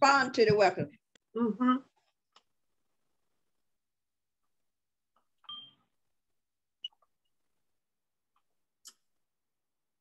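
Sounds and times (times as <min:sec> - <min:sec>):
short beep tone: 0:05.5 - 0:05.8.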